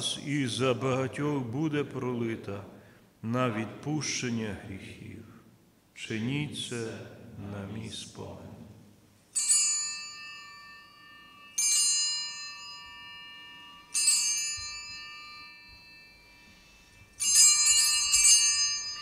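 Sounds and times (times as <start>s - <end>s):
altar bells ringing: 9.3s - 19.0s.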